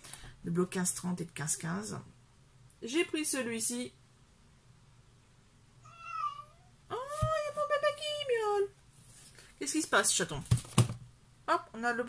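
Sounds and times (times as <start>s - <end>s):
cat meowing: 5.8s - 6.7s.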